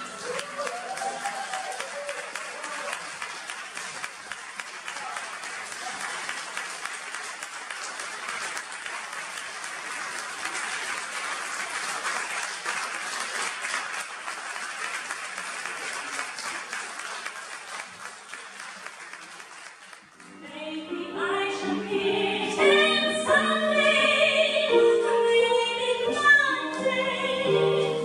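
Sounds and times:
audience applause: 0:00.0 - 0:20.4.

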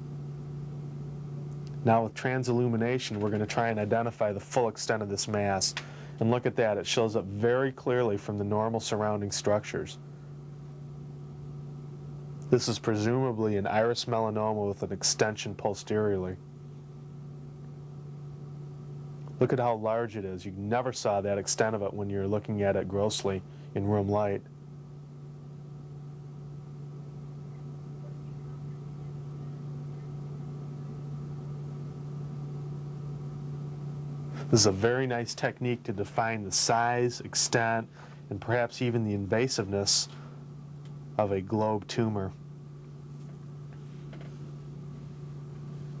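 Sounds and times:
low electrical hum: 0:00.0 - 0:46.0.

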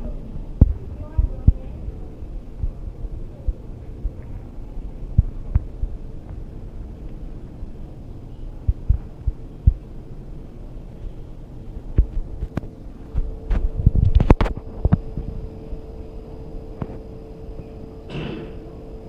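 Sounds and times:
steady low hum: 0:00.0 - 0:19.0
soft low thumps: 0:00.5 - 0:06.6, 0:08.6 - 0:09.9, 0:11.8 - 0:15.4.

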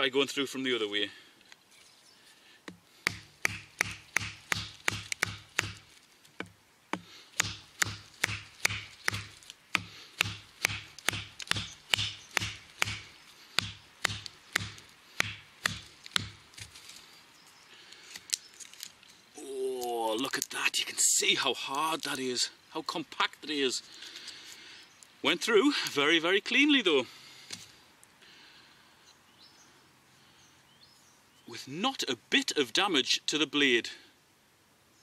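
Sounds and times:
baton knocking on knife spine: 0:03.1 - 0:05.8, 0:07.4 - 0:16.4.

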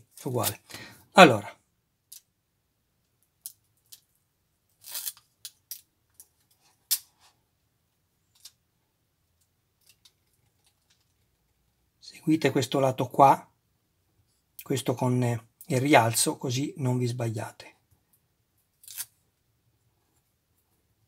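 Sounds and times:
film crinkling and clicking: 0:09.4 - 0:11.4.

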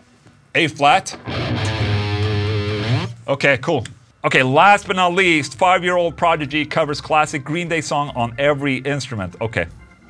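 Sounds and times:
low electric guitar note: 0:01.1 - 0:03.2.

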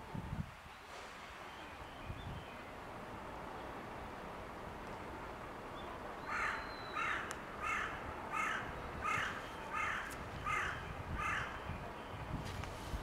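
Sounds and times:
bird calling: 0:05.8 - 0:12.2.

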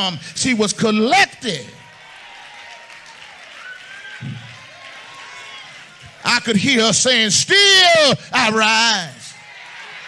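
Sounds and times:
congregation applauding: 0:01.4 - 0:08.8, 0:09.4 - 0:10.0.

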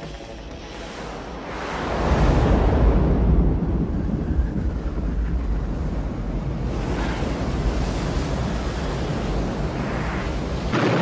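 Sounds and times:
deep rumble: 0:01.8 - 0:08.6.

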